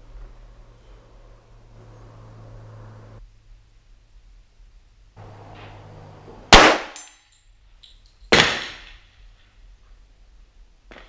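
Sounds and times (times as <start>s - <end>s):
pistol shots: 6.5s - 7.1s.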